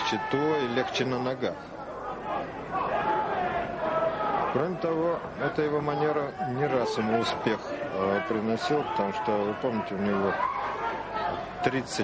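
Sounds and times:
crowd chatter in large hall: 0:00.0 - 0:12.0.

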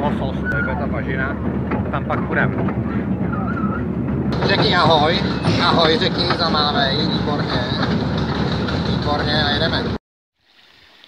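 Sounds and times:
train rumbling on rails: 0:00.0 - 0:10.0.

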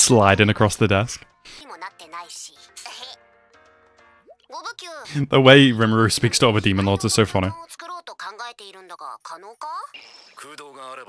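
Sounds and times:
person speaking: 0:04.6 - 0:07.7.

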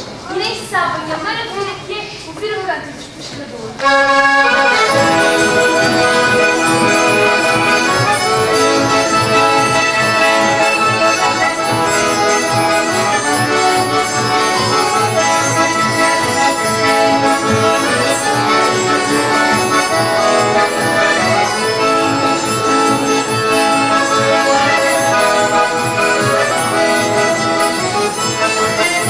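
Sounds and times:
accordion: 0:03.7 - 0:29.0.

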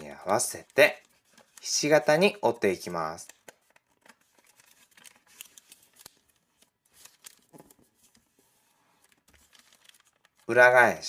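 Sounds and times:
paper being folded and creased: 0:00.0 - 0:11.0.

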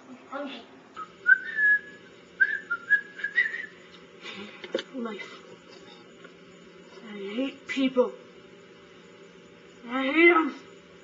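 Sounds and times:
person whistling quick notes: 0:01.0 - 0:03.8.

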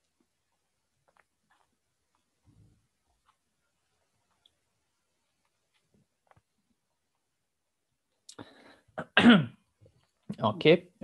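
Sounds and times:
short breath: 0:08.3 - 0:09.0
man clearing his throat: 0:09.0 - 0:09.6.

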